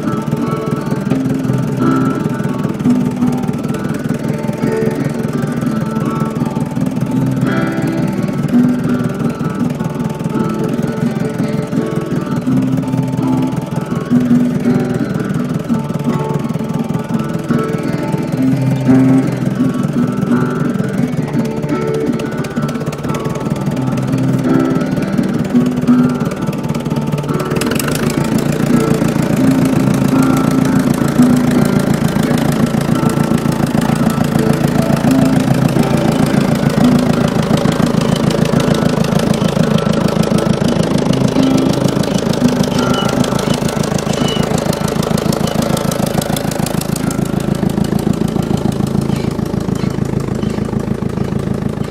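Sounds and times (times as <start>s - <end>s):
music with short held notes: 0.0s - 51.9s
tractor engine running: 0.0s - 51.9s.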